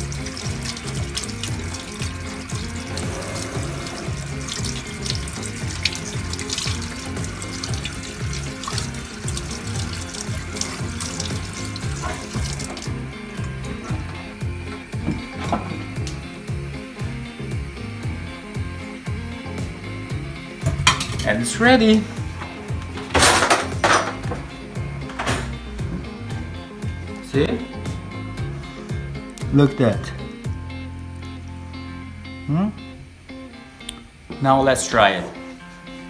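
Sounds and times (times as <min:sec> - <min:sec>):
background music with steady beat: 0:00.0 - 0:36.0.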